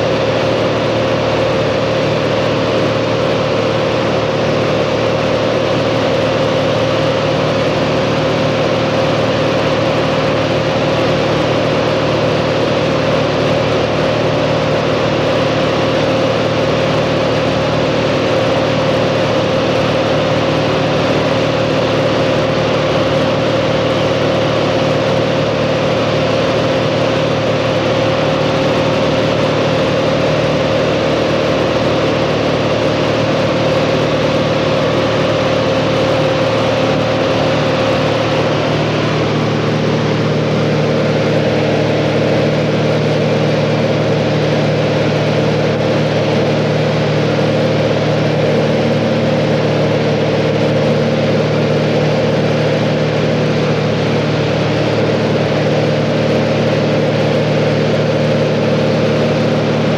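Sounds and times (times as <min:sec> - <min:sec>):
small plane engine drone: 0:00.0 - 0:59.9.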